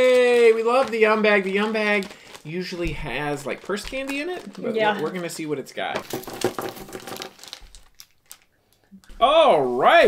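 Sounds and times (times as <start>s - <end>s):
plastic snack bag crinkling: 0.0s - 9.0s
candies clicking on wooden table: 6.0s - 8.8s.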